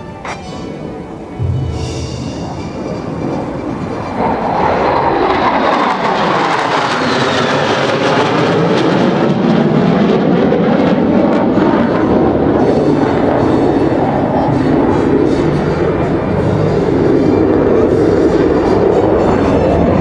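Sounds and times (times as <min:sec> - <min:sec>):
fighter jets passing over: 0:00.0 - 0:20.0.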